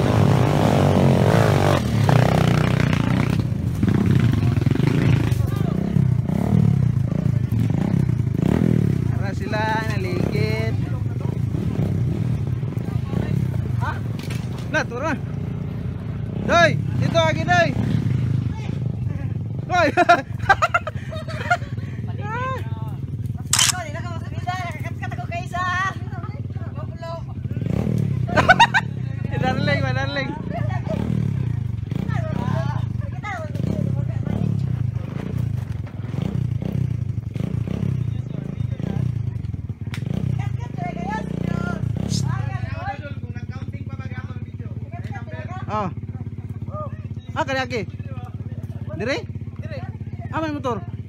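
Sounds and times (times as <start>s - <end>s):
dirt bike engine revving: 0.0s - 13.8s, 27.4s - 32.9s, 33.5s - 39.4s, 40.0s - 42.7s
people talking: 4.3s - 6.1s, 37.8s - 50.9s.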